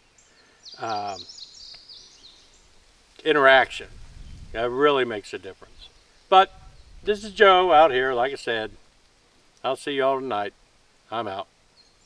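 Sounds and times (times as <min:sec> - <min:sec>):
faint outdoor hiss: 0:00.0 - 0:12.0
songbird twittering: 0:00.1 - 0:02.7, 0:04.2 - 0:04.6, 0:05.6 - 0:08.7.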